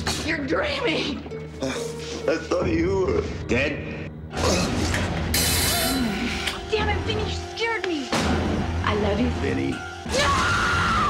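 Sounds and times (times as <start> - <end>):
low music drone: 1.6 - 11.0.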